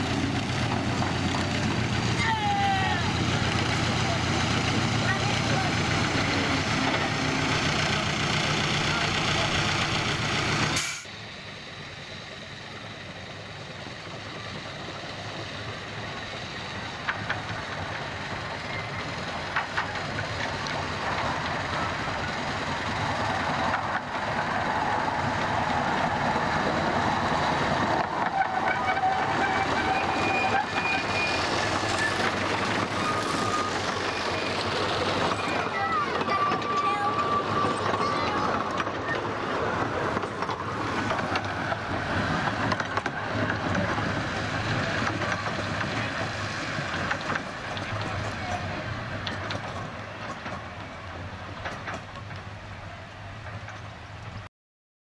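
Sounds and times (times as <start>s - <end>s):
miniature locomotive engine running: 0.0s - 54.4s
miniature train passing on track: 0.0s - 54.5s
passengers' voices: 34.6s - 48.9s.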